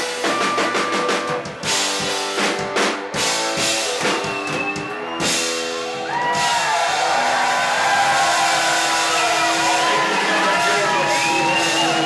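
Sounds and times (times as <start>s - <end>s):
drums and cymbals crash: 0.0s - 12.0s
audience shouting and cheering: 3.8s - 12.0s.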